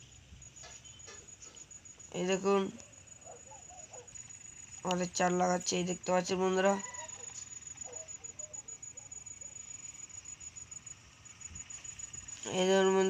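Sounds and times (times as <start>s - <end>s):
voice: 2.1s - 2.8s, 4.8s - 7.0s, 12.4s - 13.0s
distant chickens clucking: 3.2s - 4.2s, 6.6s - 9.6s.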